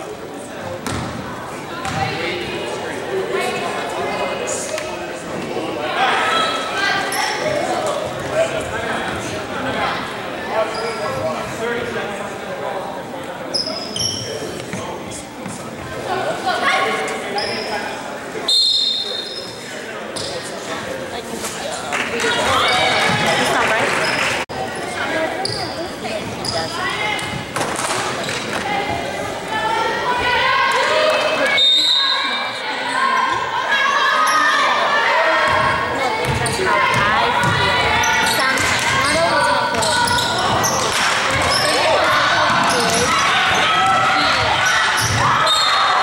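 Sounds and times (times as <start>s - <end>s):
overlapping voices in a gym: 0.0s - 46.0s.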